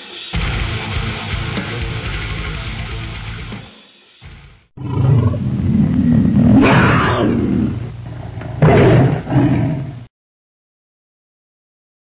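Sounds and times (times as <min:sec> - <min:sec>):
big cat roaring: 0:04.8 - 0:10.1.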